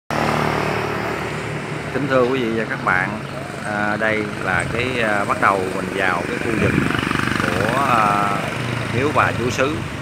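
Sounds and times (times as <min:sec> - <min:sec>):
vehicle engine running: 0:00.1 - 0:10.0.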